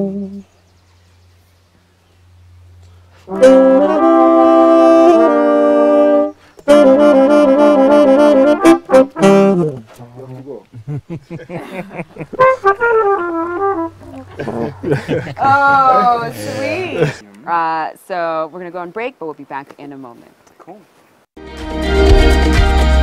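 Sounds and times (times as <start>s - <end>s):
horn trio playing chords: 0.0s - 0.4s, 3.2s - 10.3s, 11.6s - 17.2s.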